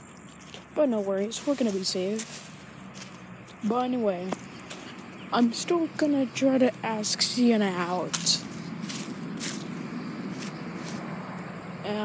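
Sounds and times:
footsteps on grass and leaves: 0.3 - 5.1, 8.1 - 11.2
leaves rustling: 0.4 - 5.0, 7.8 - 11.2.

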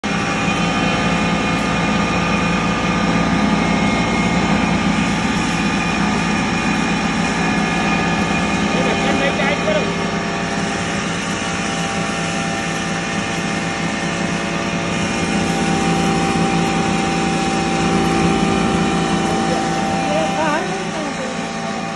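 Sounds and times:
electric flour mill humming: 0.0 - 21.9.

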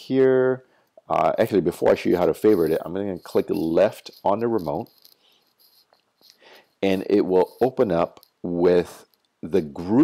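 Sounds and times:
man talking: 0.0 - 5.0, 6.8 - 10.0
faint hiss: 0.0 - 10.0.

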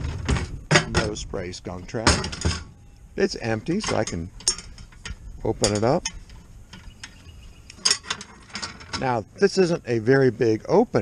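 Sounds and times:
metal trap door rattling: 2.0 - 2.8, 3.7 - 6.3, 7.8 - 9.2.

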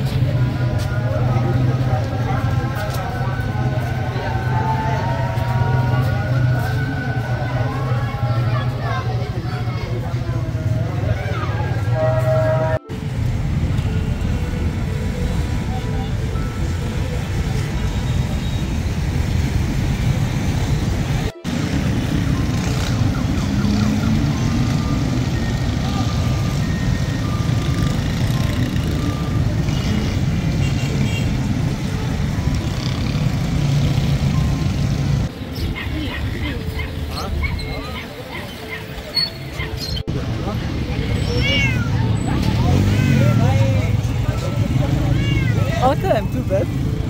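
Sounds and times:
chatter of many voices: 0.0 - 12.8, 35.5 - 47.0
motorbike and car traffic: 0.0 - 47.0.

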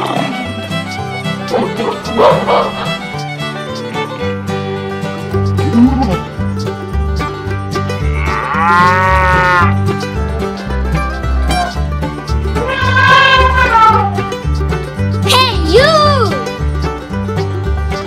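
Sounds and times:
background music with bass line: 0.0 - 18.0
cow mooing: 8.1 - 9.8, 12.6 - 14.2.

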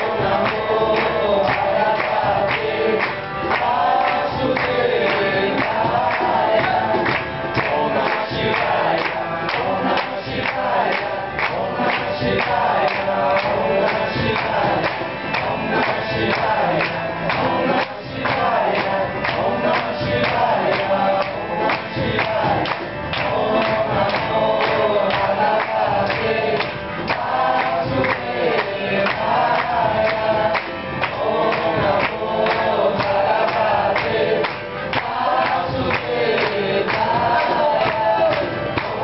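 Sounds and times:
group chanting in chorus: 0.0 - 39.0
steady beat: 0.0 - 39.0.

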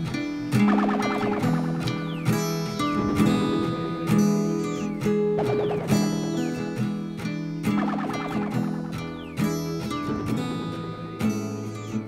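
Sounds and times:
guitar chords strummed: 0.0 - 12.0.

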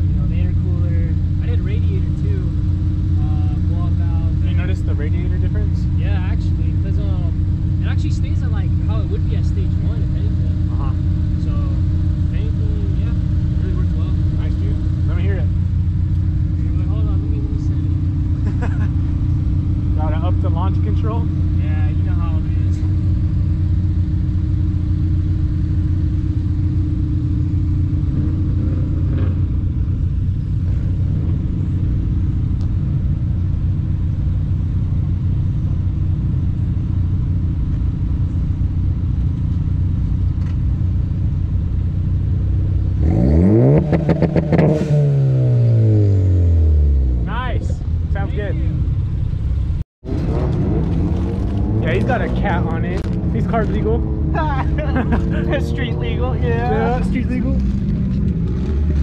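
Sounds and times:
car revving and accelerating: 0.0 - 38.3, 42.1 - 49.0, 50.1 - 59.0
car engine idling: 0.0 - 59.0.

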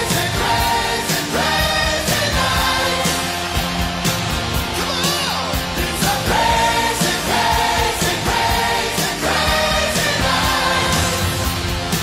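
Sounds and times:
person singing with harmony voices: 0.0 - 3.3, 4.8 - 11.5
hard rock music: 0.0 - 12.0.

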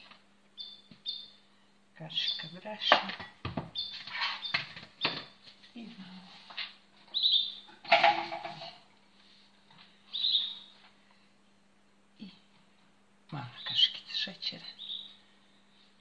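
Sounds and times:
steady low hum: 0.0 - 16.0
small bird chirping: 0.5 - 2.9, 3.7 - 5.4, 7.1 - 7.8, 10.1 - 10.9, 13.3 - 15.6.

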